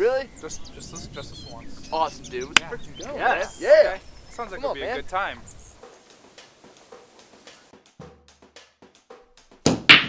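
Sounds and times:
billiard balls cracking: 0:09.6 - 0:10.0.

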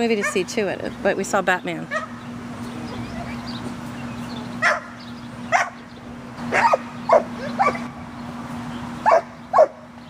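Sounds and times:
dog barking: 0:04.6 - 0:04.9, 0:05.5 - 0:05.8, 0:06.5 - 0:07.9, 0:09.0 - 0:09.8.

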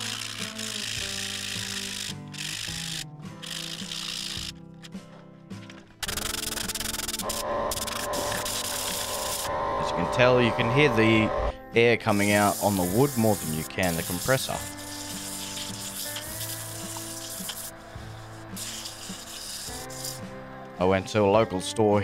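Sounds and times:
sandpaper hissing on turning wood: 0:00.0 - 0:04.5, 0:06.0 - 0:09.5, 0:12.0 - 0:20.3
background music: 0:00.0 - 0:22.0
compressed air blowing: 0:06.0 - 0:20.3.

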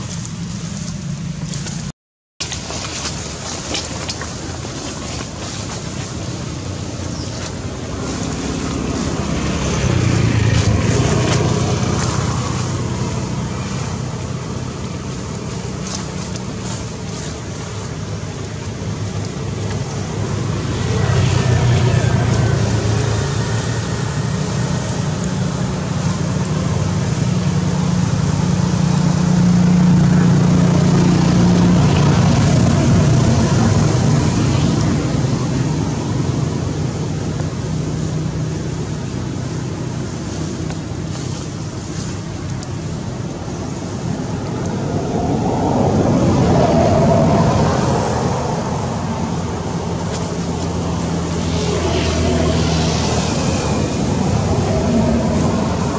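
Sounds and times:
low engine hum: 0:00.0 - 0:55.9.

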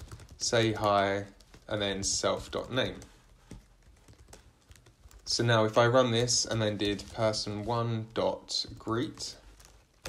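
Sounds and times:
faint keyboard typing: 0:00.0 - 0:10.0.

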